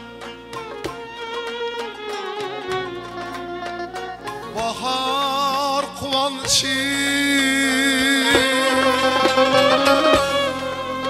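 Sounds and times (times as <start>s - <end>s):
spike fiddle: 0.0s - 5.4s, 7.5s - 11.0s
lute: 0.0s - 11.0s
frame drum: 8.2s - 10.8s.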